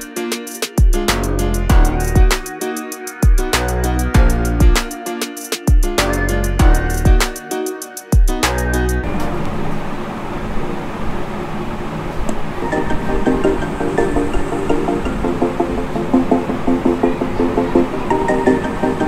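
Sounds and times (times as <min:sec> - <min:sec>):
music from small speaker: 0:00.0 - 0:09.0, 0:12.6 - 0:19.0.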